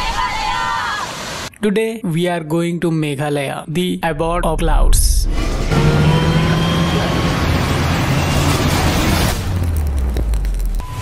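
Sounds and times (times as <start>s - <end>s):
highway traffic engine drone: 5.3s - 10.4s.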